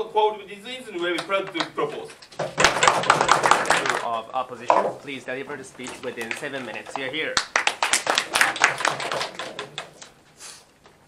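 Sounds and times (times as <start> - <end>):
small audience applauding: 1.0 - 4.9, 5.7 - 10.2.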